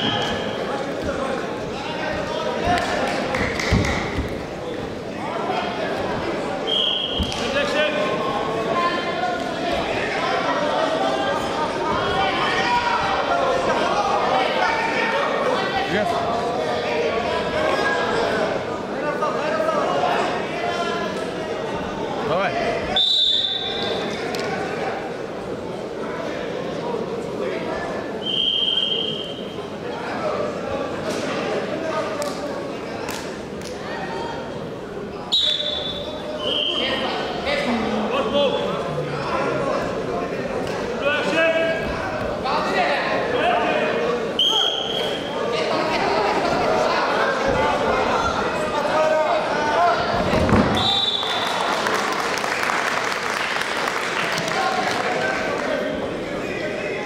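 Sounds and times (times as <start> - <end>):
arena crowd voices: 0.0 - 57.0
referee's whistle blast: 6.7 - 7.3, 35.3 - 37.0, 50.7 - 51.6.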